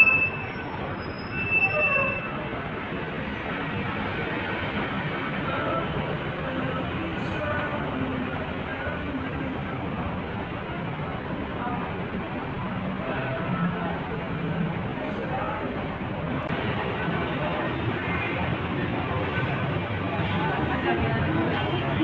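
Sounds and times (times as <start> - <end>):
high-pitched squeals: 0.0 - 2.5
traffic din: 0.0 - 22.0.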